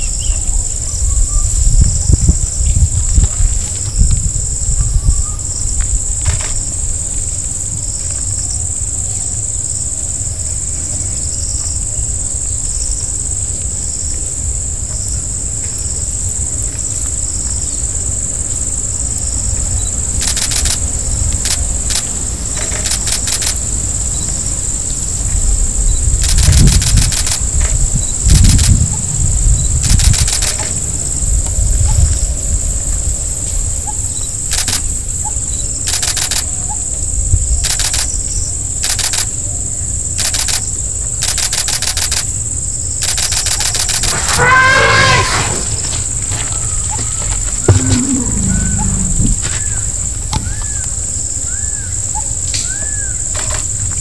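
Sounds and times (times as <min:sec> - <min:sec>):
insects droning: 0:00.0 - 0:54.0
rapid clicking bursts: 0:20.2 - 0:23.8, 0:26.2 - 0:28.9, 0:29.8 - 0:30.9, 0:34.4 - 0:35.0, 0:35.8 - 0:36.6, 0:37.6 - 0:39.4, 0:40.2 - 0:42.4, 0:43.0 - 0:44.4
wavering animal call: 0:44.0 - 0:45.8, 0:46.5 - 0:49.9
low rumble: 0:44.2 - 0:50.3.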